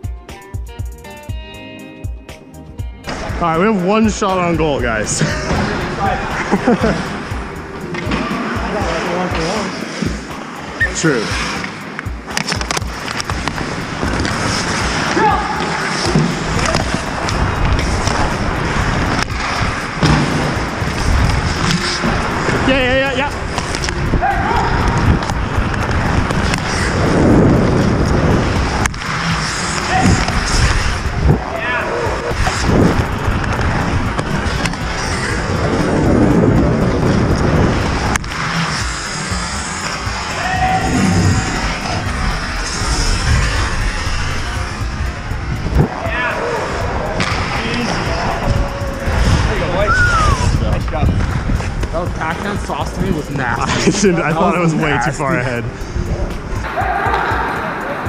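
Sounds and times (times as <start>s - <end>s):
players calling out: 3.3s - 58.0s
skates scraping on ice: 5.1s - 45.2s
hockey sticks and puck clacking: 7.0s - 40.9s, 45.9s - 48.4s.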